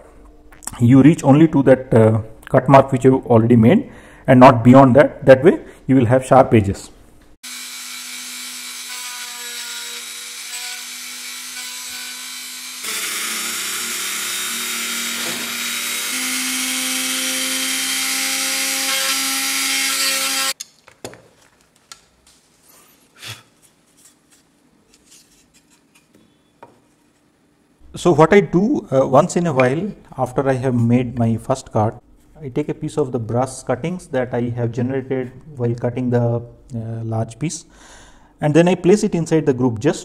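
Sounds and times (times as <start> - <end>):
rotary tool motor whine: 9.9 - 16.8.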